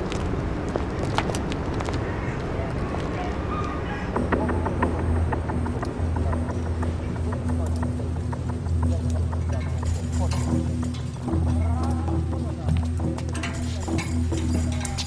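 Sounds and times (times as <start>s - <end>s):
low music drone: 2.6s - 15.0s.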